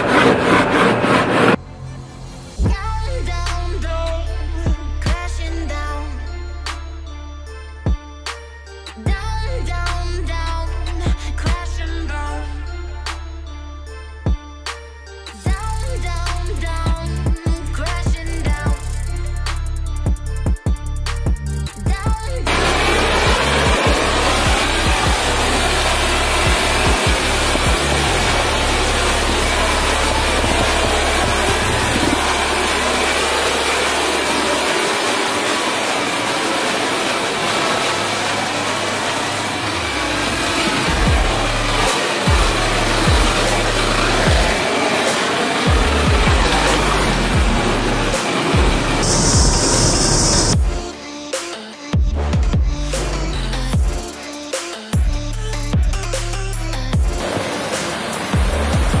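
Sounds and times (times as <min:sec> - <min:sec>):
electronic music: 0:21.2 - 0:59.0
pressure washer spraying: 0:22.5 - 0:50.6, 0:57.2 - 0:59.0.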